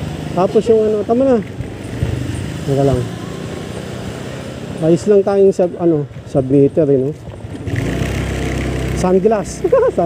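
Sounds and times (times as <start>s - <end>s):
scooter engine running: 0.0s - 10.0s
wind and road noise: 0.0s - 10.0s.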